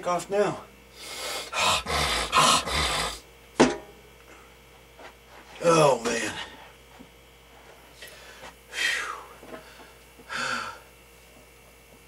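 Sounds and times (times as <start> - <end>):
man breathing hard: 0.9 - 3.2, 8.0 - 11.0.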